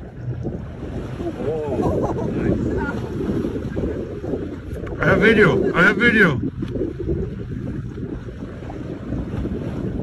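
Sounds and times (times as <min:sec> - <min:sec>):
wind buffeting microphone: 0:00.0 - 0:10.0.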